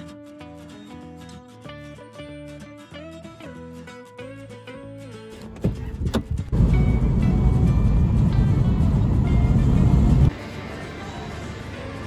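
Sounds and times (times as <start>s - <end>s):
guitar music: 0.0s - 12.0s
car rumbling on the move: 5.6s - 10.3s.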